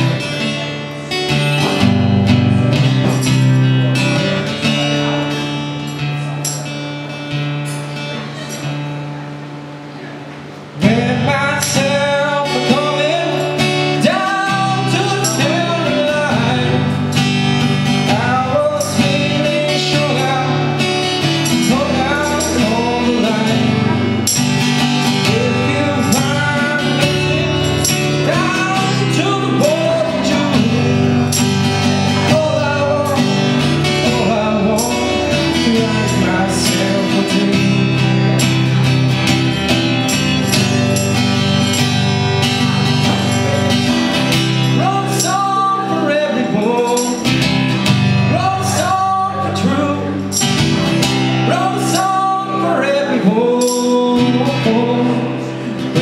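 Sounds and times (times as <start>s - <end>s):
acoustic guitar strumming: 0.0s - 56.0s
person singing: 10.8s - 38.8s, 42.5s - 56.0s.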